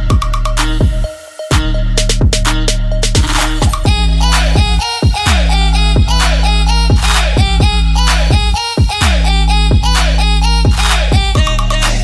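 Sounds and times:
electronic hip-hop music with heavy bass: 0:00.0 - 0:12.0.

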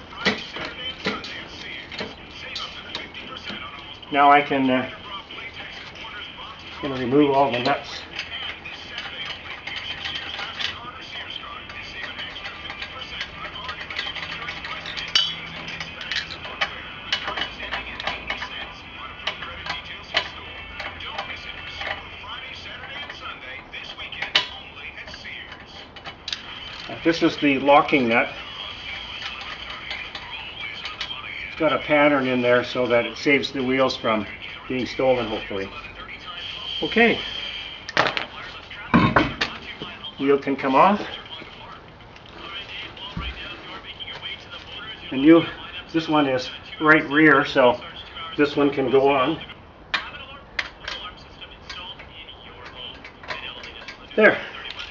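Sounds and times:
lug nuts clinking in hand: 0:11.7 - 0:18.5.

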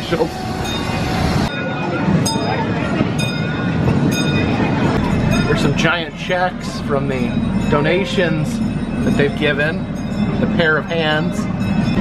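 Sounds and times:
crowd chatter: 0:00.0 - 0:12.0
small train rolling: 0:00.0 - 0:12.0.

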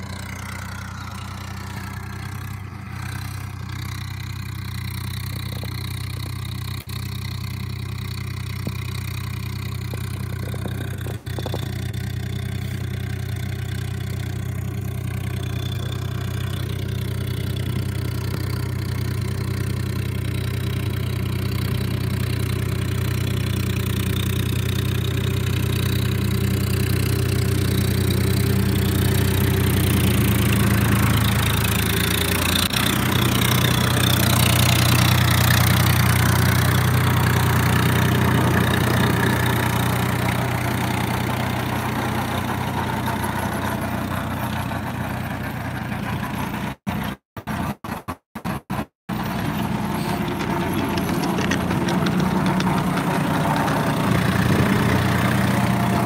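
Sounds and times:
tractor diesel engine running: 0:00.0 - 0:47.2, 0:49.1 - 0:56.0.

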